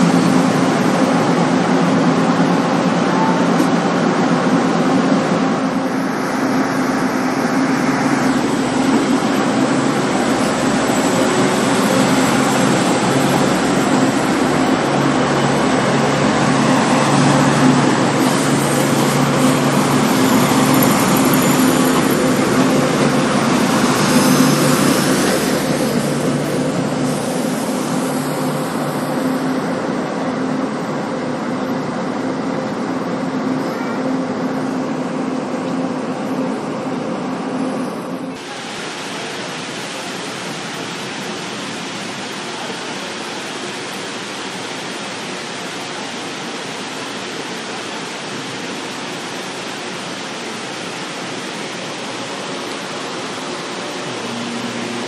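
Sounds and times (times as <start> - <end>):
train running hum: 0.0 - 55.0
rushing hiss: 5.7 - 30.0, 38.4 - 55.0.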